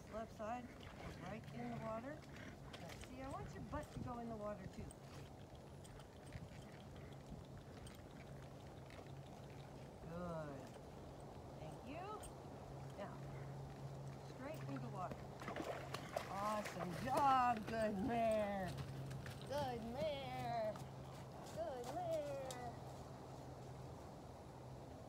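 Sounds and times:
steady low hum: 0.0s - 25.0s
distant woman speaking: 21.5s - 22.8s.

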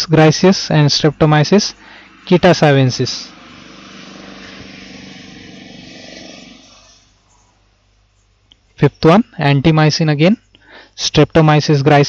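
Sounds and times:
low engine hum: 1.1s - 7.7s.

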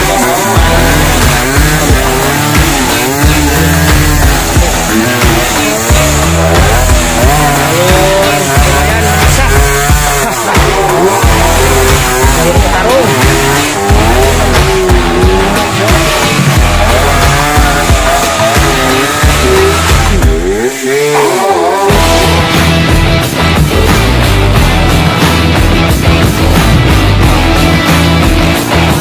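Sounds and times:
dirt bike engines revving: 0.0s - 29.0s.

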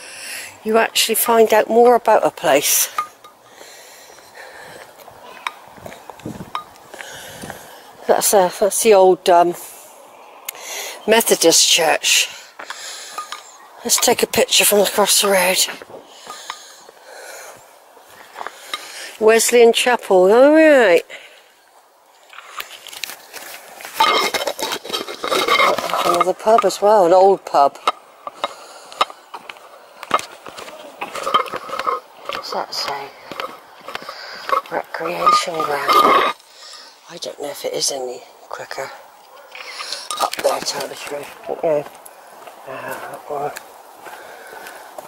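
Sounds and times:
quiet street ambience: 0.0s - 45.0s
camera microphone rubbing rustle: 5.7s - 6.6s.

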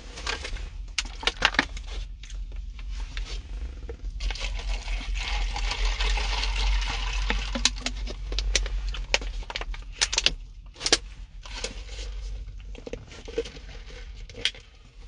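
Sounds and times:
low rumble: 0.0s - 15.0s.

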